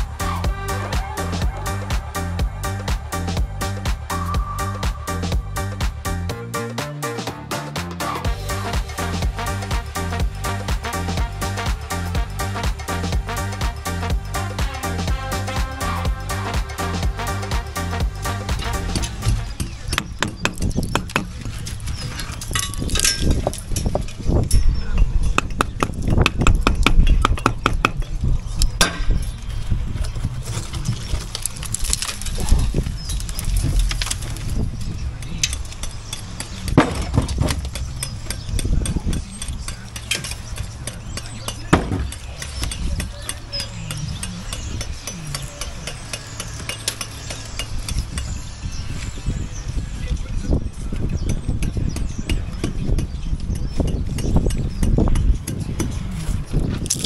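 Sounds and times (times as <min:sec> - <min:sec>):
brick rubble clinking: 0:19.0 - 0:26.0, 0:26.7 - 0:48.0
hammer striking brickwork: 0:19.9 - 0:21.4, 0:25.4 - 0:28.1, 0:28.8 - 0:29.2, 0:35.4 - 0:48.3.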